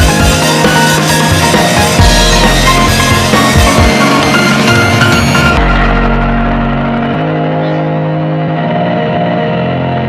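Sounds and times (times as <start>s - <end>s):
sustained synth chords: 0.0s - 10.0s
deep bass note: 1.9s - 8.6s.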